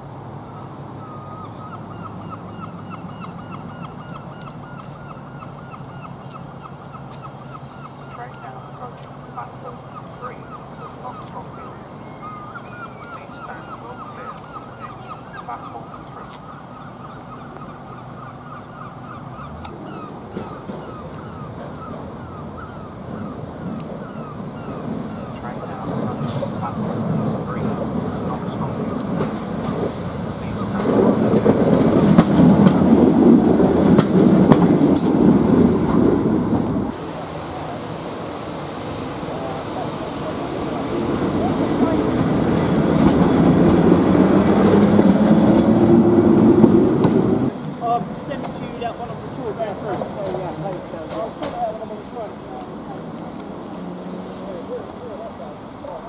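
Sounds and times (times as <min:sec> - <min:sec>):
locomotive passing with loud rumble: 0:00.0 - 0:56.0.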